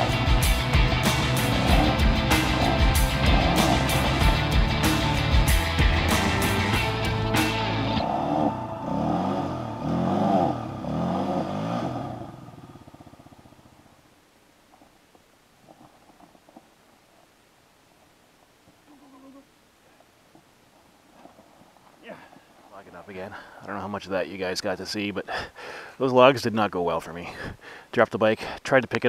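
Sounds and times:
background music with a beat: 0.0 - 8.0.

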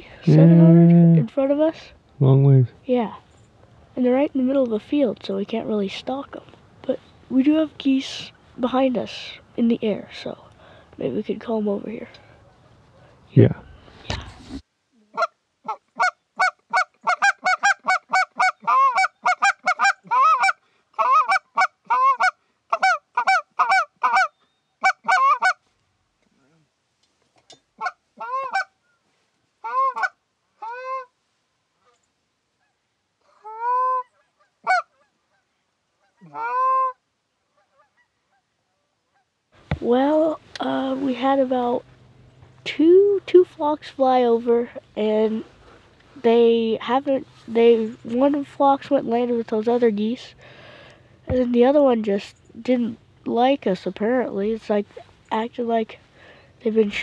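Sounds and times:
geese honking: 15.2 - 25.6, 27.8 - 28.7, 29.6 - 31.1, 33.4 - 35.0, 36.0 - 37.0.

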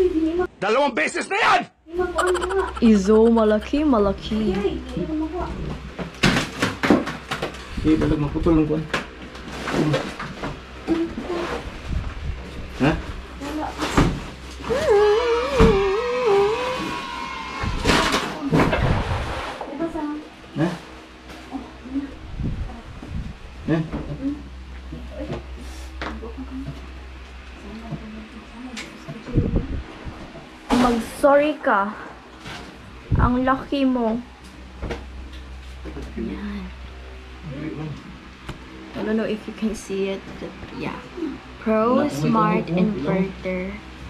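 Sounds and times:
people talking and exclaiming: 1.4 - 3.7
low steady rumble: 1.8 - 16.4, 17.6 - 44.0
knocks and bumps of refrigerator: 5.6 - 8.2, 13.6 - 14.4, 15.5 - 16.0.

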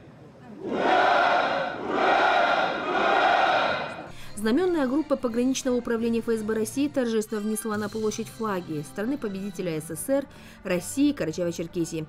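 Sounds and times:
troops shouting in unison: 0.6 - 4.1.

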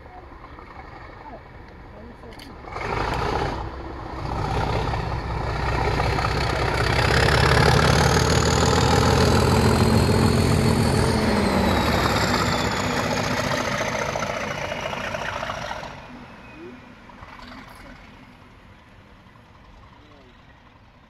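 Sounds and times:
diesel locomotive engine passing: 0.0 - 21.0
turbocharger whistle: 6.8 - 16.8.

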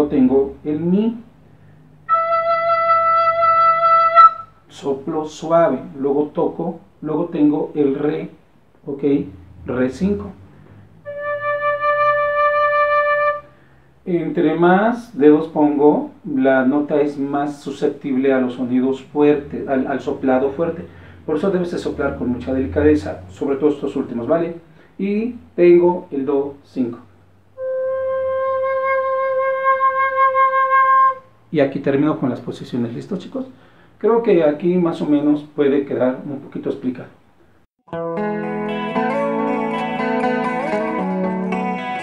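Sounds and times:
recorder playing low note: 19.4 - 24.2.

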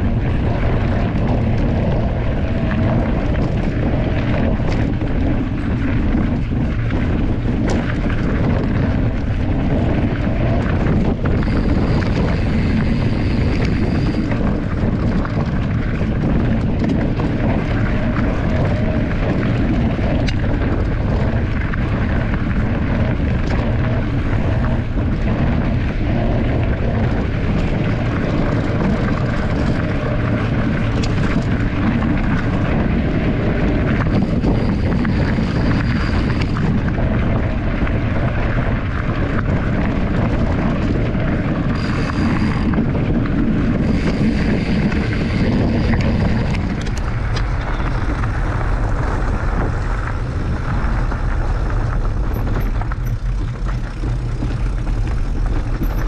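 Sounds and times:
bike tyres rolling over gravel: 0.0 - 56.0
wind buffeting microphone: 0.0 - 56.0.

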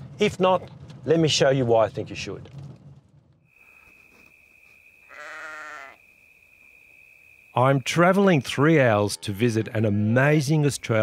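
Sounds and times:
animal bleat: 5.0 - 6.0.

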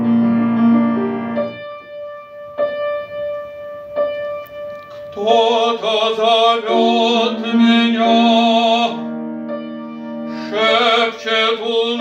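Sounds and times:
grand piano chords and notes: 0.0 - 12.0.

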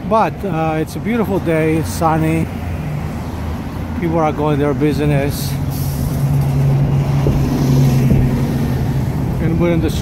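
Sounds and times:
bus engine passing: 0.0 - 10.0
street traffic: 0.0 - 10.0.

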